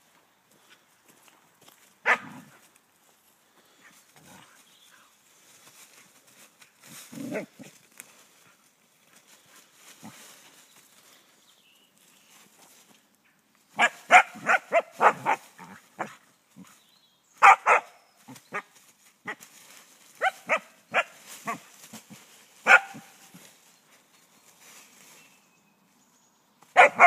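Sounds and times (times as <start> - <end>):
dog barking: 2.0 - 2.5, 13.8 - 16.2, 17.4 - 18.6, 20.2 - 21.7, 22.6 - 23.2, 26.8 - 27.0.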